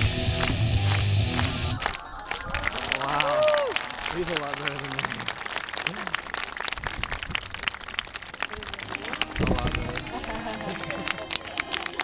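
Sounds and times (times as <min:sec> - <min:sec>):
audience applauding: 0:00.3 - 0:12.0
voices calling out: 0:01.4 - 0:06.3.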